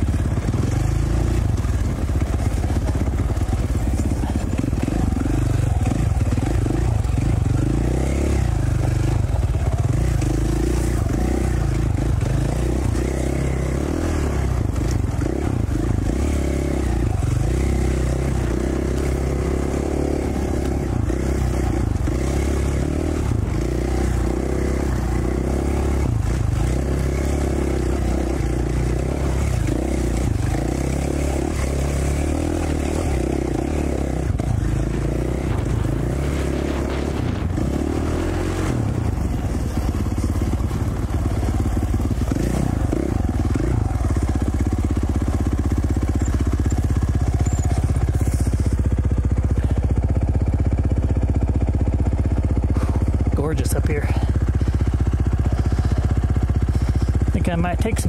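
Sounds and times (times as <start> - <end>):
dirt bike engine running at low revs: 0.0 - 58.0.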